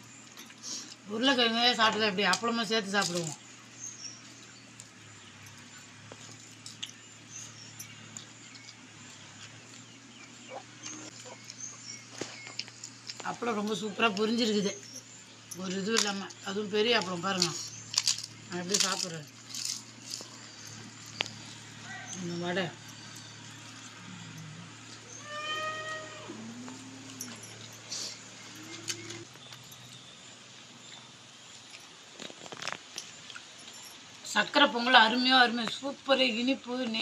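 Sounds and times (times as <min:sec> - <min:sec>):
animal high cry: 0:25.0 - 0:27.4.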